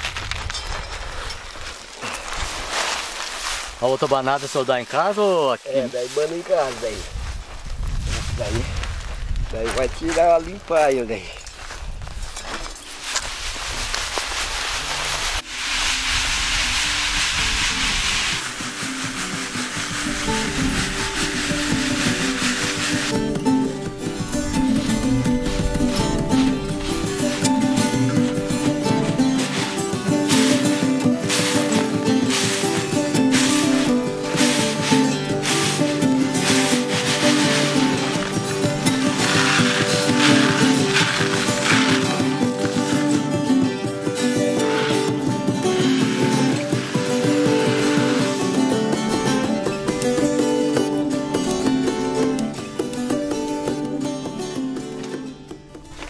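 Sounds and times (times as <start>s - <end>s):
beans rustling in a sieve: 2.2s - 7.4s, 12.9s - 23.2s, 29.3s - 43.1s, 46.0s - 48.9s
instrumental music: 15.4s - 56.0s.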